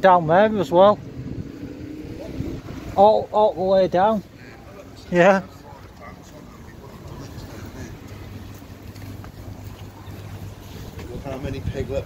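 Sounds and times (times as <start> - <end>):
street noise: 0.0 - 12.0
wind on microphone: 1.0 - 3.0.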